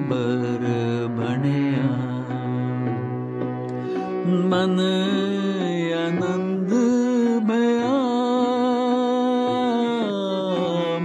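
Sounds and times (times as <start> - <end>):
person singing long gliding vowel: 0.0 - 11.0.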